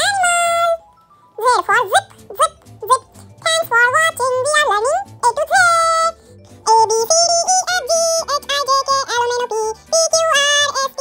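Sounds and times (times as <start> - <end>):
children's song with synthesized voice: 0.0 - 11.0.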